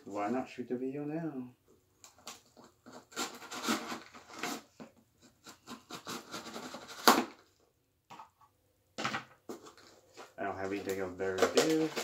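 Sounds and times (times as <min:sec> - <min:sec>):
cardboard scratching and rubbing: 0:02.4 - 0:07.4.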